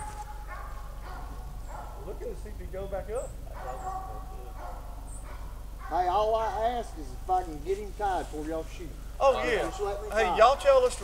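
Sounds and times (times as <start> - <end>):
hunting dog baying: 0.0 - 7.4, 9.2 - 11.0.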